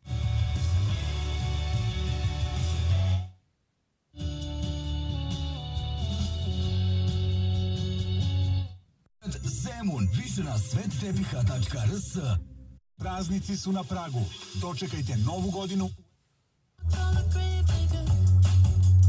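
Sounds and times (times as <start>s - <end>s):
music from car radio: 0.0s - 3.3s, 4.2s - 8.5s, 9.2s - 12.4s, 13.1s - 15.9s, 16.8s - 19.0s.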